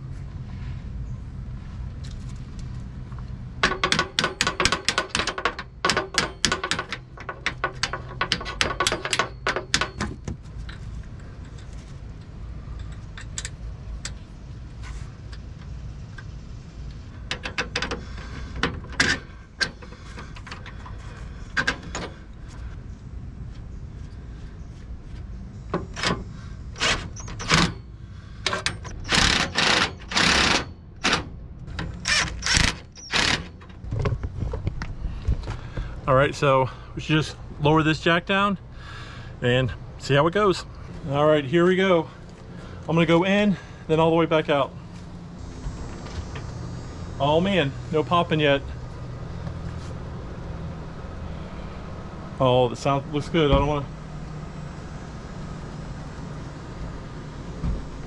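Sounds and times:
rapid mechanical clicking: 28.5s - 33.7s.

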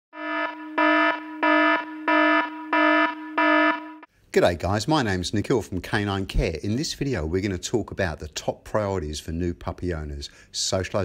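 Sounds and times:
low buzzing electronic alarm tone: 0.1s - 4.1s.

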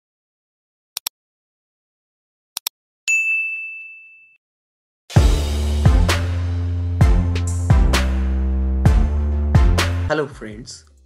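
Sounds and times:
notification bell ding: 3.1s - 4.4s.

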